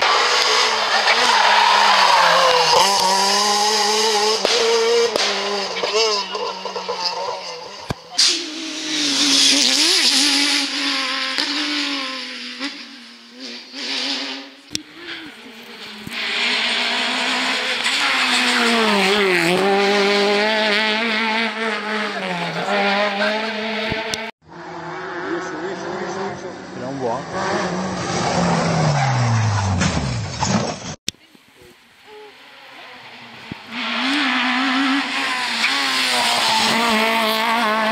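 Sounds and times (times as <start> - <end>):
rally car engines revving: 0.0 - 31.0, 32.1 - 37.9.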